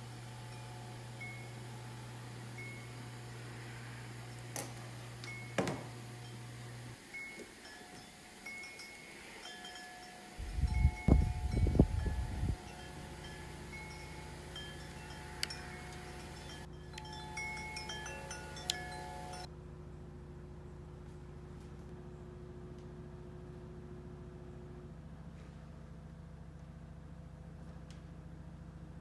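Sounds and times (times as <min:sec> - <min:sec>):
steady low hum: 0:00.0 - 0:29.0
chime-like tones: 0:07.1 - 0:19.5.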